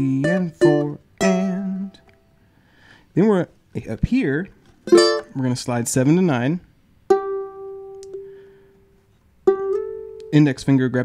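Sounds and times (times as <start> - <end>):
ukulele note ringing: 4.9 - 5.3.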